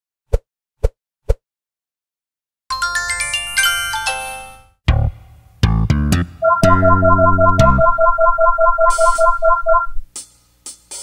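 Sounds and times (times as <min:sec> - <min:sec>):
synthesizer jingle trill: 0:06.4 - 0:10.0.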